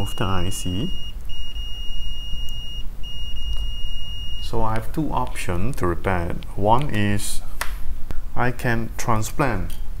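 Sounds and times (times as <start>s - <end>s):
multimeter continuity beep: 0.0s - 4.8s
low hum: 0.0s - 10.0s.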